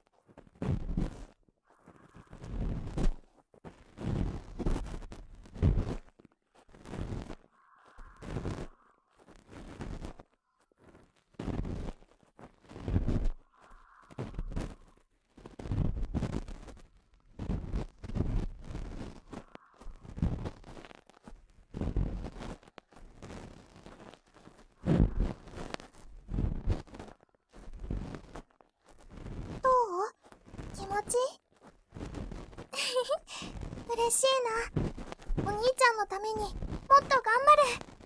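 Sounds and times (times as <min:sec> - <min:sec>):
ear pick scraping in microphone ear: 0:00.5 - 0:38.0.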